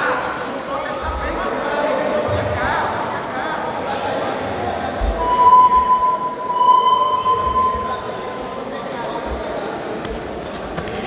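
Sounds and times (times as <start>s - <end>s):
hall noise: 5.0s - 8.8s
high-pitched steady tone: 5.2s - 8.5s.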